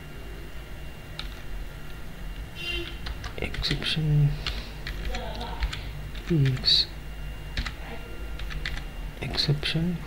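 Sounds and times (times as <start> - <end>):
typing on computer keyboard: 2.8 - 3.7, 4.4 - 6.7, 7.6 - 7.8, 8.4 - 8.9.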